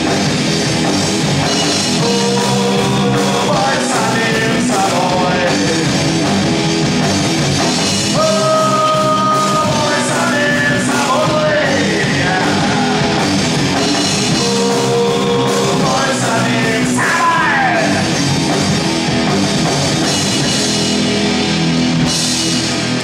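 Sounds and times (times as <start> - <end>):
live rock band playing: 0.0 - 23.0.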